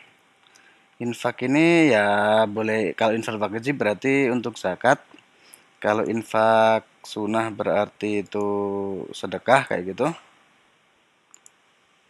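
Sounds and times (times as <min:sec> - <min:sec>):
computer mouse clicks: 0:11.3 - 0:11.6.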